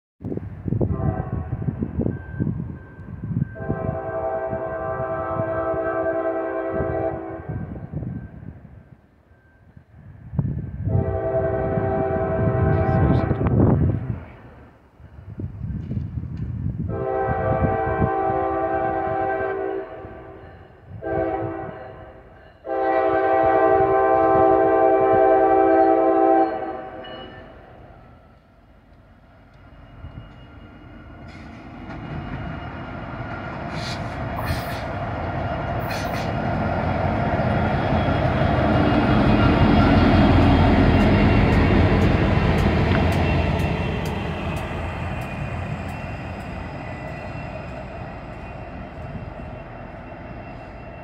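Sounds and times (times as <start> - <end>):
train rumbling: 0.2 - 51.0
locomotive air horn chord: 0.9 - 1.7, 3.6 - 7.7, 10.9 - 13.6, 16.9 - 27.4.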